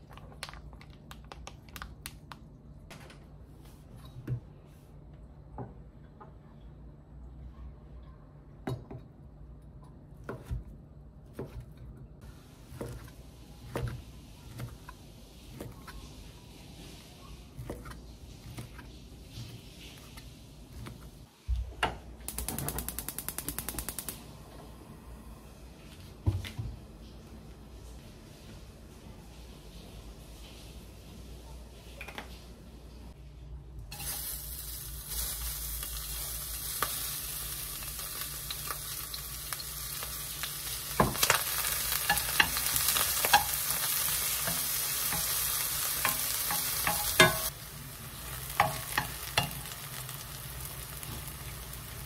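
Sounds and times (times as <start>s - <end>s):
spark igniter clicking rapidly: 22.3s - 24.2s.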